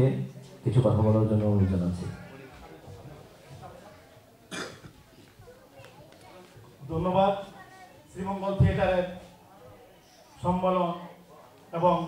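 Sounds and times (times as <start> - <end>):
faint murmuring voices: 0.0 - 12.0
person coughing: 4.5 - 5.0.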